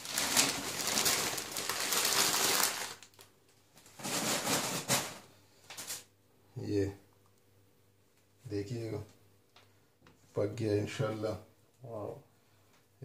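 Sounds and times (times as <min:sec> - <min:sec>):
newspaper rustling and crinkling: 0:00.0 - 0:06.1.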